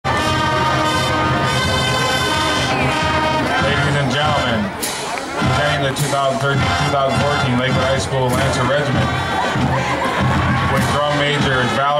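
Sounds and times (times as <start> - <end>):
brass long-held chords: 0.0 - 11.9
marching band playing: 0.0 - 11.9.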